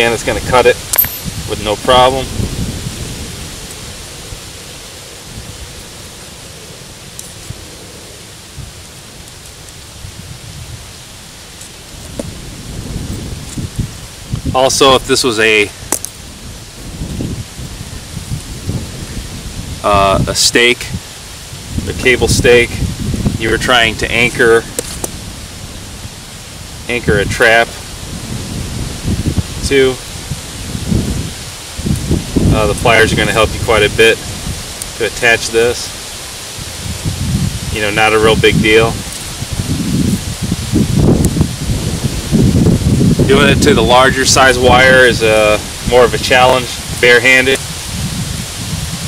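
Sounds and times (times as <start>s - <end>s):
outdoor background hiss: 0.0s - 49.0s
wind rumble on microphone: 0.0s - 49.0s
sharp click: 0.9s - 1.3s.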